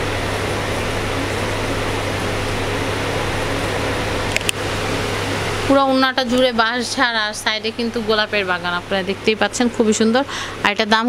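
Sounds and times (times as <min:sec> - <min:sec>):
machine hum and hiss: 0:00.0 - 0:11.0.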